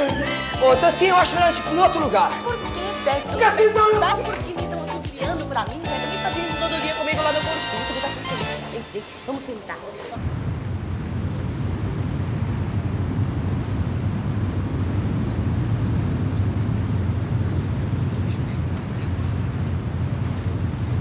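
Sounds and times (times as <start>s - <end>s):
insects chirping: 8.8s - 21.0s
steady low rumble: 10.2s - 21.0s.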